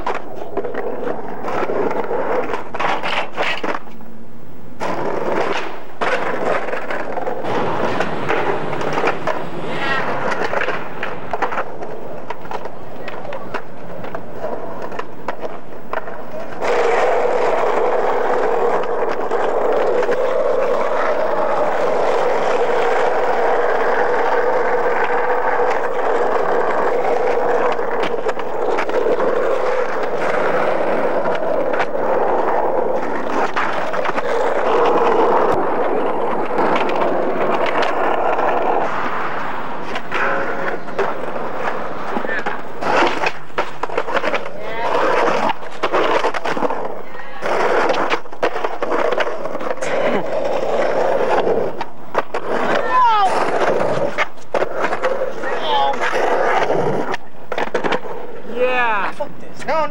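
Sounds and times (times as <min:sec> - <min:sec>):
skateboard wheels clattering on bricks: 0:00.0 - 0:04.1, 0:04.8 - 0:59.9
skateboard clacks: 0:00.0 - 0:59.9
skateboard wheels rolling on asphalt: 0:00.0 - 0:59.9.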